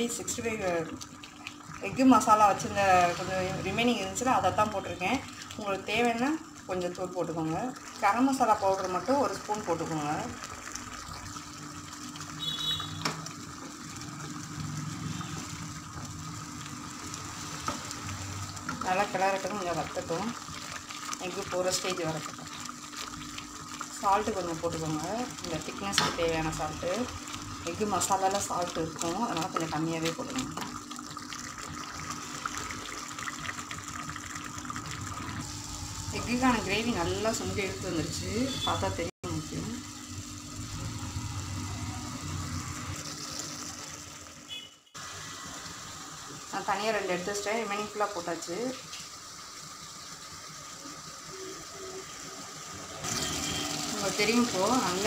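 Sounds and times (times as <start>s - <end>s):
gravy simmering and bubbling: 0.0s - 37.7s
water pouring into pan: 0.4s - 37.8s, 48.6s - 55.0s.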